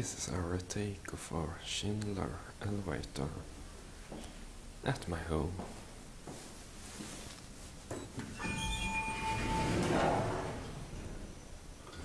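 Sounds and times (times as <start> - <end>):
steady electronic tone: 8.3 - 11.9
sliding doors rushing: 8.6 - 11.4.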